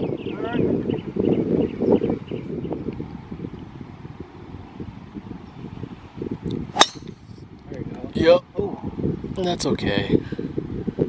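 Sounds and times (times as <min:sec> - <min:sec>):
wind on microphone: 0:00.0 - 0:11.0
golf club striking ball: 0:06.7 - 0:07.3.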